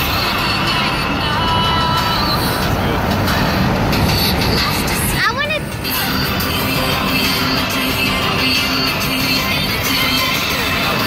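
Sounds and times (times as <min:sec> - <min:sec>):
road and wind noise in car: 0:00.0 - 0:11.0.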